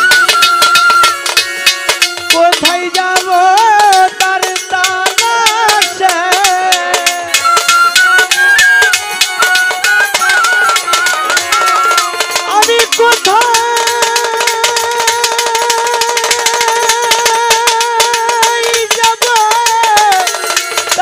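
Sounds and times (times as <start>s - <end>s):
bamboo flute: 0.0s - 2.4s, 7.3s - 12.8s
fast steady percussion: 0.0s - 21.0s
violin: 0.0s - 21.0s.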